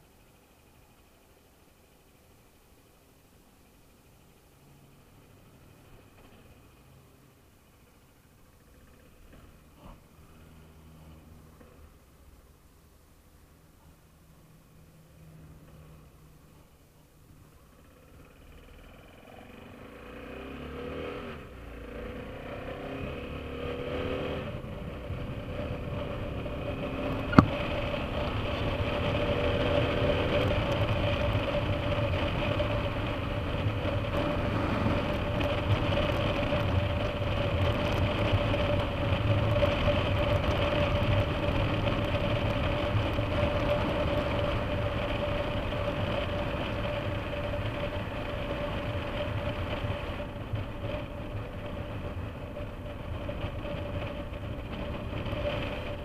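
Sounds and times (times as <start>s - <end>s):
wind and road noise: 0.0s - 56.0s
motorcycle engine accelerating: 17.6s - 56.0s.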